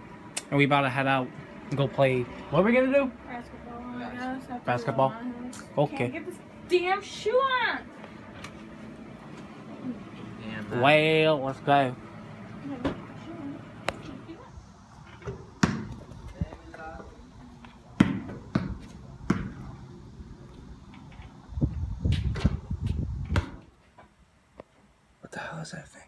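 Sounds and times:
voices talking: 9.5 - 15.0
basketball bouncing on concrete: 15.2 - 17.1, 17.9 - 19.8, 22.2 - 23.7.

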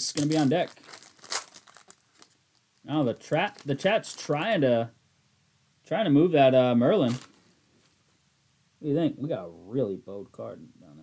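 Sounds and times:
foil wrapper ripping: 0.0 - 4.3, 7.0 - 7.4
faint foil crinkling: 0.0 - 4.6, 6.9 - 8.1.

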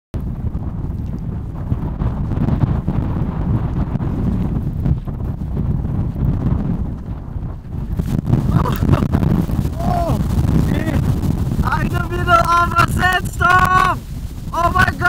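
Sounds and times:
strong wind buffeting microphone: 0.2 - 15.0.

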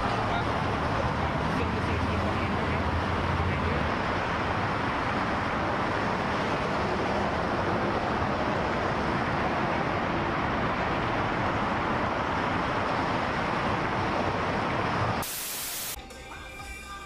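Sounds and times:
traffic on wet highway: 0.0 - 16.0
static-like hiss: 15.2 - 16.0
music: 16.0 - 17.0.

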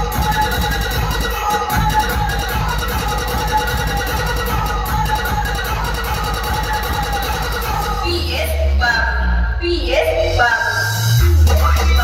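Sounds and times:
heavy bass pulses: 0.0 - 12.0
loud dj music: 0.0 - 12.0.

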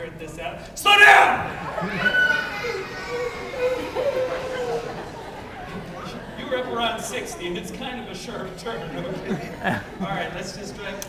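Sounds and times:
audience laughing and chattering: 1.3 - 11.0
children's voices: 1.6 - 7.3.

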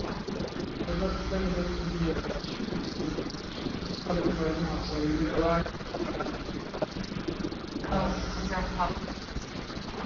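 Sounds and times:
low room hum: 0.0 - 10.0
person speaking: 7.8 - 9.3.

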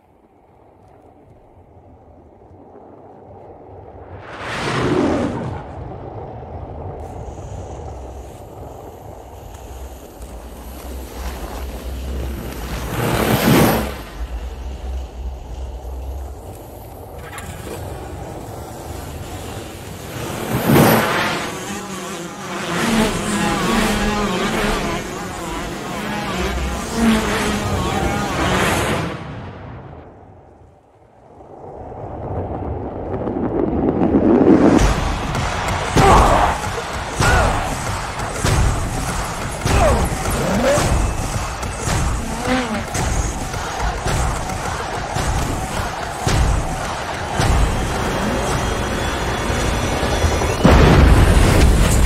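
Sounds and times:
dramatic orchestral score: 34.8 - 52.0.

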